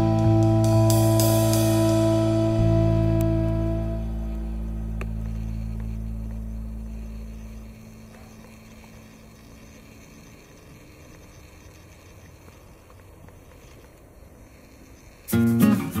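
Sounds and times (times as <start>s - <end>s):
background music: 0.0s - 8.9s
faint outdoor hiss: 0.0s - 16.0s.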